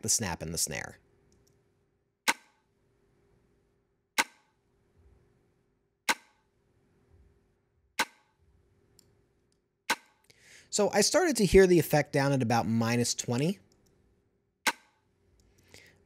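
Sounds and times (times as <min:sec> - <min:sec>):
compressed snap and snare hits: 0:02.3 - 0:02.7, 0:04.2 - 0:04.6, 0:06.1 - 0:06.5, 0:08.0 - 0:08.4, 0:09.9 - 0:10.3, 0:14.6 - 0:15.0.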